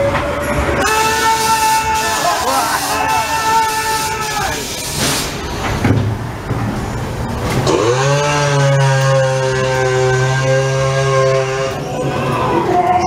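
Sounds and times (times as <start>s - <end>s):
ride car rumbling: 0.0s - 13.0s
motor-like buzz rising in pitch: 7.7s - 11.9s.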